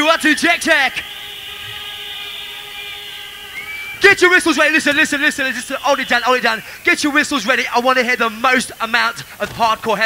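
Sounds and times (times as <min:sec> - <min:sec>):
electronic drone: 0:00.0 - 0:08.4.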